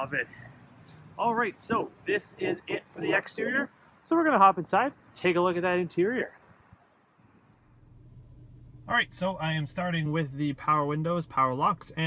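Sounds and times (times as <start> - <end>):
low background hum: 7.6 - 12.0
man speaking: 8.9 - 12.0.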